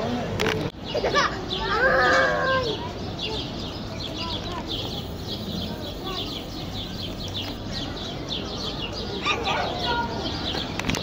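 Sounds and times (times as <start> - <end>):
people chattering outdoors: 0.0 - 11.0.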